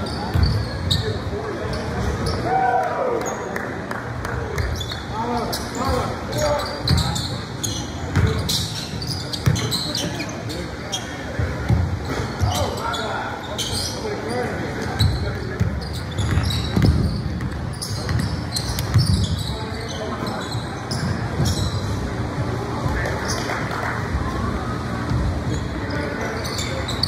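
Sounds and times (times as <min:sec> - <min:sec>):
short high shoe squeaks: 0:00.0 - 0:02.5, 0:04.6 - 0:11.3, 0:12.0 - 0:22.0, 0:25.5 - 0:27.0
basketball bouncing on hardwood: 0:16.3 - 0:18.3.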